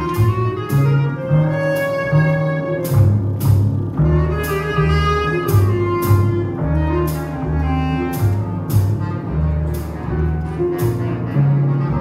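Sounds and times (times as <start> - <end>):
low bass line: 0.0 - 12.0.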